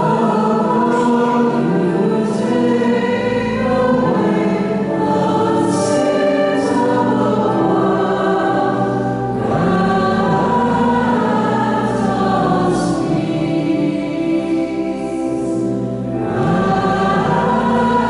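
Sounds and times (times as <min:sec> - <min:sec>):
choir singing slow notes: 0:00.0 - 0:18.0.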